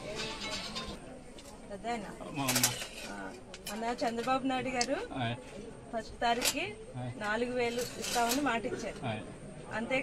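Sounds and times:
murmur of voices: 0.0s - 10.0s.

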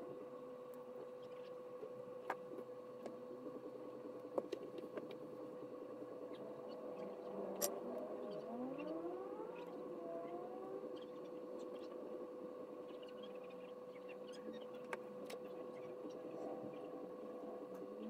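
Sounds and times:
faint steady hum: 0.0s - 18.0s
rising siren-like wail: 6.4s - 11.2s.

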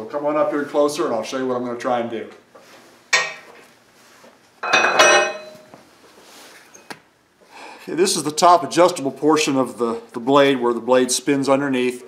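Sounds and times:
heavy steel parts clanking: 4.6s - 5.6s.

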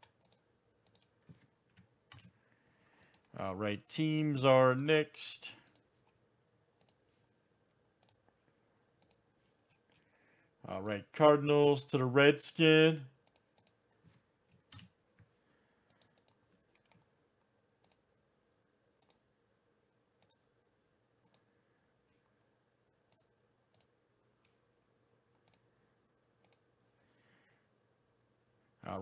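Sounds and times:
computer mouse clicks: 0.0s - 2.4s, 3.0s - 3.3s, 6.8s - 7.0s, 8.0s - 8.4s, 9.0s - 10.0s, 13.2s - 13.8s, 15.9s - 17.1s, 17.8s - 18.1s, 19.0s - 19.2s, 20.2s - 20.4s, 21.2s - 21.5s, 23.1s - 24.0s, 25.4s - 25.7s, 26.4s - 26.7s
faint steady hum: 0.0s - 29.0s.

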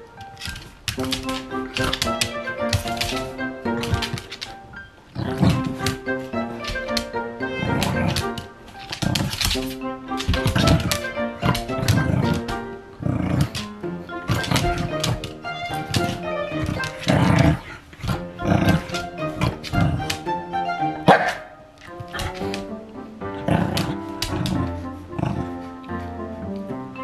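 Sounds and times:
background music: 0.0s - 27.0s
dog barking: 21.0s - 21.6s.

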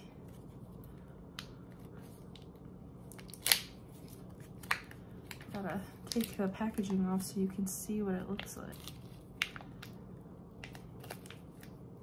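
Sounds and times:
packaging clicks and rustles: 1.4s - 7.0s, 10.6s - 11.8s
sharp packaging crackle: 2.3s - 6.5s, 10.6s - 11.8s.

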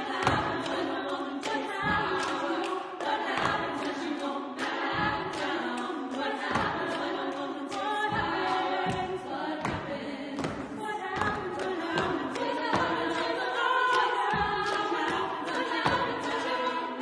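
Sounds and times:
women singing a cappella: 0.0s - 17.0s.

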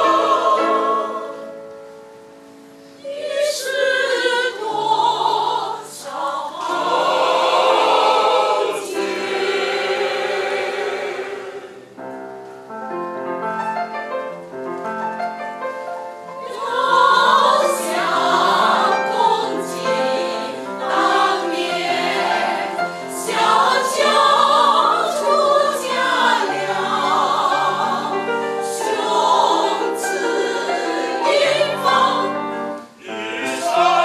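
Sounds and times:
mixed choir singing: 0.0s - 1.7s, 3.0s - 12.0s, 16.3s - 34.0s.

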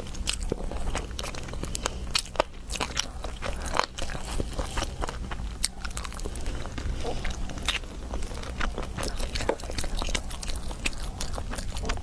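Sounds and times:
shell crackling and crunching: 0.0s - 12.0s
wet sucking and chewing: 0.0s - 12.0s.

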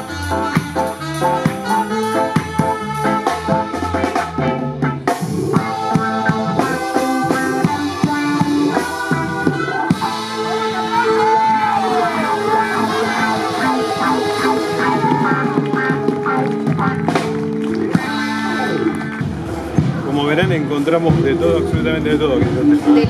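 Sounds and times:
trumpet: 0.0s - 19.4s
drum kit beat: 0.0s - 23.0s
electric guitars: 0.0s - 23.0s
keyboard: 0.0s - 23.0s
street band playing upbeat music: 0.0s - 23.0s.

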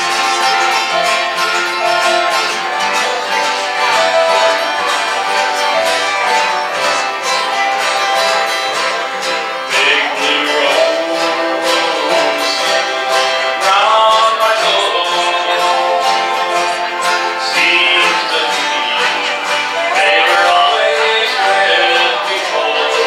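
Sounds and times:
acoustic string band playing: 0.0s - 23.0s
mandolin: 0.0s - 23.0s.

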